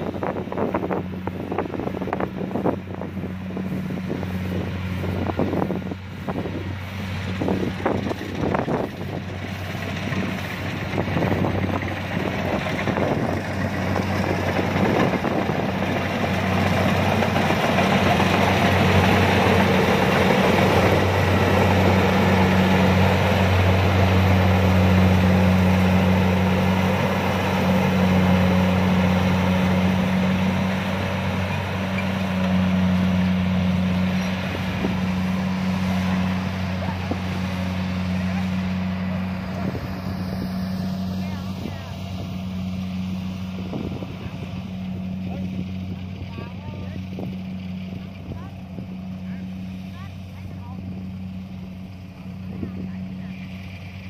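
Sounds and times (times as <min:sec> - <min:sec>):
combine harvester diesel engine: 0:00.0 - 0:54.0
cutting and threshing machinery: 0:00.0 - 0:54.0.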